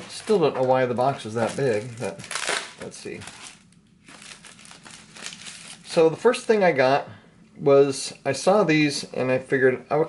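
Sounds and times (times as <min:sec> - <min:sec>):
packing material crinkling: 0:00.0 - 0:06.7.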